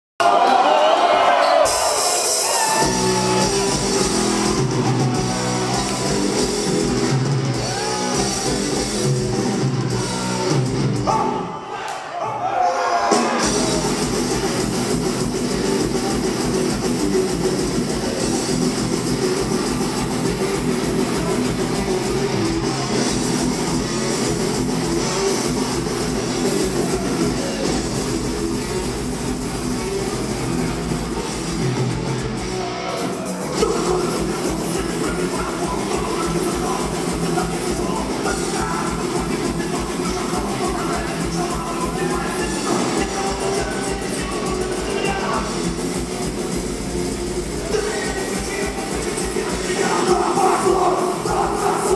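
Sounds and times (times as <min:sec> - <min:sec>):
heavy metal band playing live: 0:01.3 - 0:11.6, 0:13.0 - 0:51.9.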